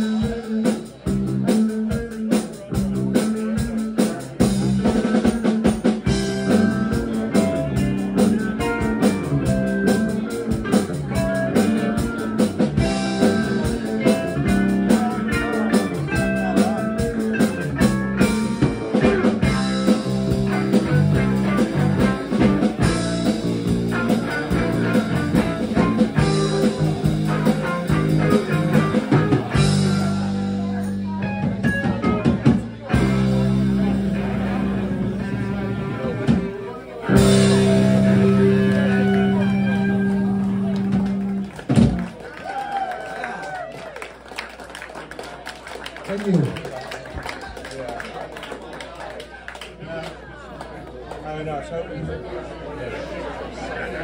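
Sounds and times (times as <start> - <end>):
drum kit beat: 0.0 - 42.2
electric guitars: 0.0 - 43.6
live rock band playing: 0.0 - 44.7.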